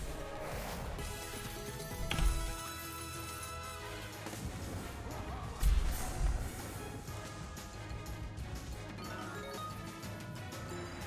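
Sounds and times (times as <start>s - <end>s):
slot game music: 0.0s - 11.0s.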